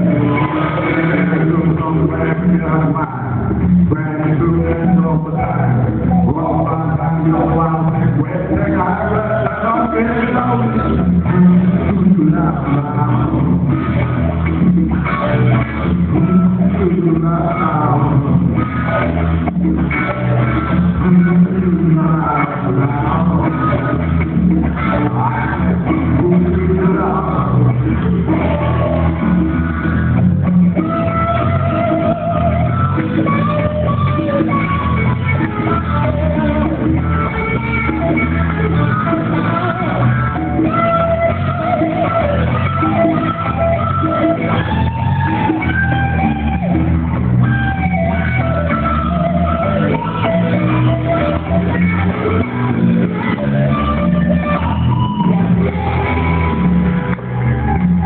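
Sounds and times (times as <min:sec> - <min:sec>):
electric guitars holding notes: 0:00.0 - 0:58.0
rock band playing: 0:00.0 - 0:58.0.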